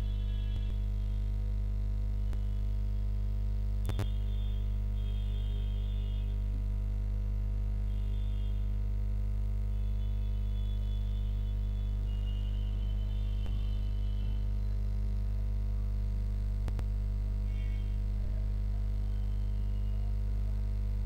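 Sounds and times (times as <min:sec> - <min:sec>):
mains hum: 0:00.0 - 0:21.0
faint high-pitched tones: 0:03.9 - 0:06.5, 0:09.7 - 0:14.8, 0:17.4 - 0:20.2.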